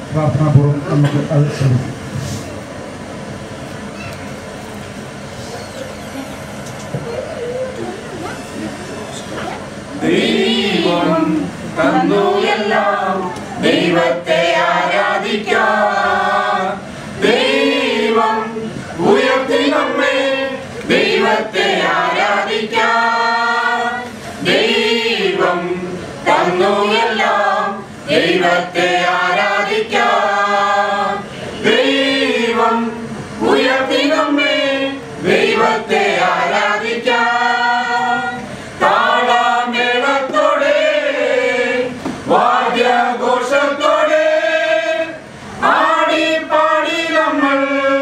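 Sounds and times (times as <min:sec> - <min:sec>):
group singing a christian song: 0:09.9 - 0:48.0.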